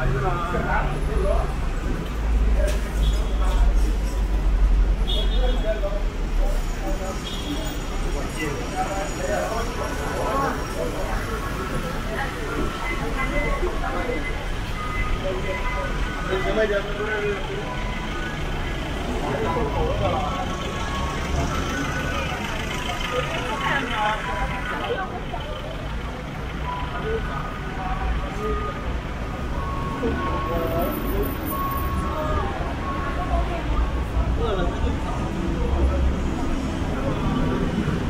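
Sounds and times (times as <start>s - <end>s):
passers-by talking: 0.0s - 38.0s
road traffic hum: 0.0s - 38.0s.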